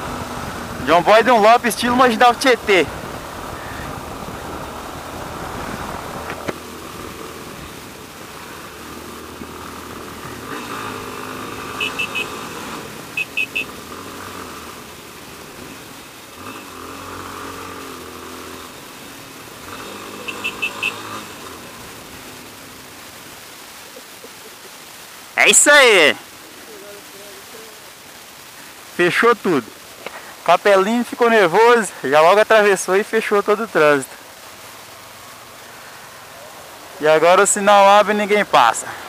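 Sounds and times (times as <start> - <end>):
motorcycle engine revving: 0.0 - 23.8
surrounding traffic noise: 0.0 - 39.0.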